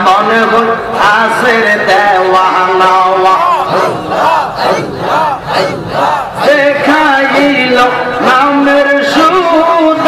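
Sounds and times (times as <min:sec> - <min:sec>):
men chanting rhythmically: 0:01.0 - 0:08.6.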